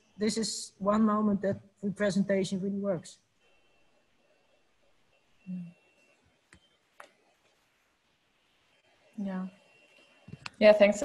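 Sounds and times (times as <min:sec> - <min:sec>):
faint high whine: 0:01.8 - 0:11.0.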